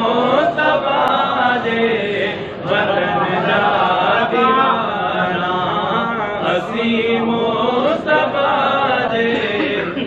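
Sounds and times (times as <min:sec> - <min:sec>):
man chanting devotional verse: 0:00.0 - 0:10.0.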